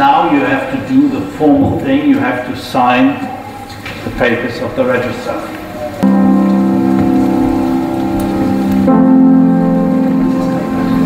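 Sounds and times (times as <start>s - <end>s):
sustained keyboard chord: 6.0s - 11.0s.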